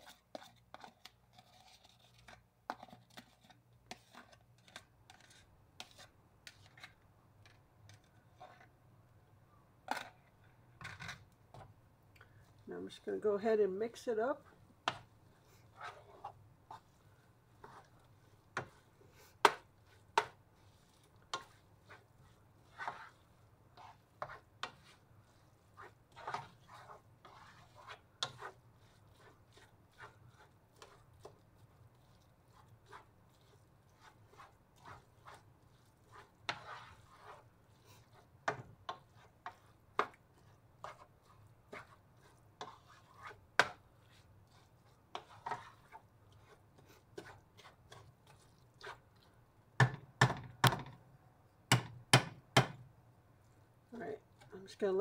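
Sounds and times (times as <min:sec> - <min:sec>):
spatula scraping frying pan: 0:00.0 - 0:08.8, 0:12.4 - 0:50.0.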